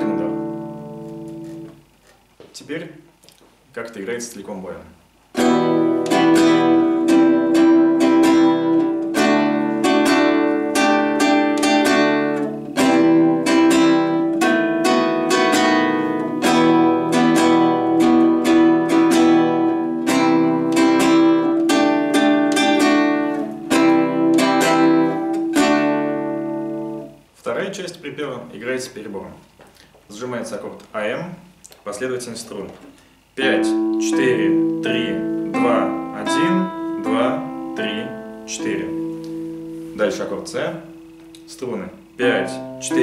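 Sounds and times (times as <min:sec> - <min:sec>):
acoustic guitar strumming: 0:00.0 - 0:02.1, 0:05.3 - 0:27.4, 0:32.9 - 0:43.0.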